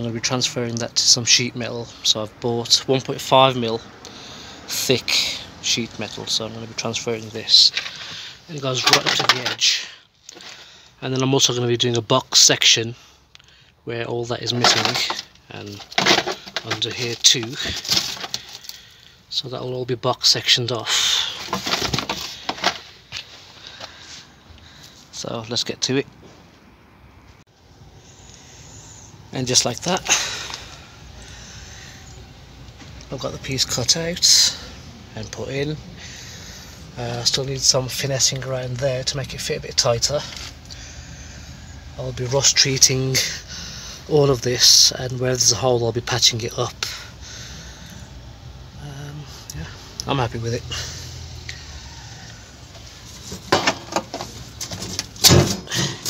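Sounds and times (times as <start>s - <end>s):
faint background noise: 0.0s - 56.0s
metal panel clunks and rattles: 53.2s - 56.0s.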